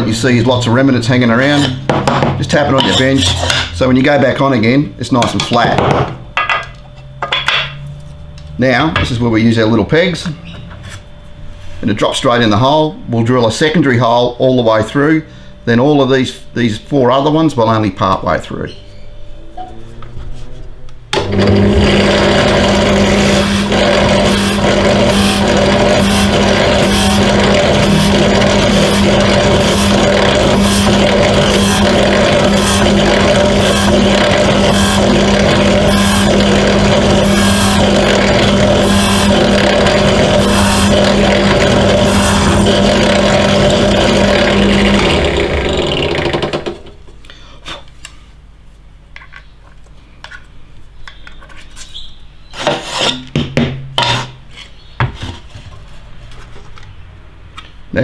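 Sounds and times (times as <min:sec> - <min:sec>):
drill press motor winding down: 0:21.1 - 0:47.0
drill press bit cutting: 0:21.2 - 0:46.9.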